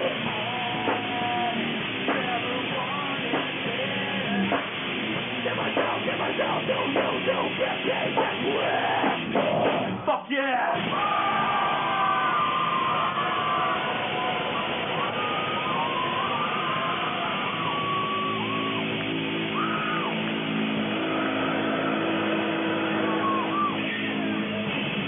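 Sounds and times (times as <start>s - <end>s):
held low guitar chords: 0.0s - 10.0s, 11.5s - 25.0s
high sliding guitar notes: 0.0s - 10.0s, 10.8s - 25.0s
distorted electric guitars: 0.0s - 25.0s
drums: 0.0s - 25.0s.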